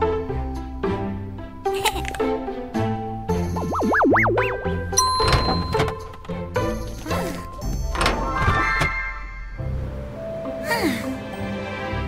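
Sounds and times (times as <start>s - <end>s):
background music: 0.0s - 12.0s
elevator arrival chime: 4.6s - 6.2s.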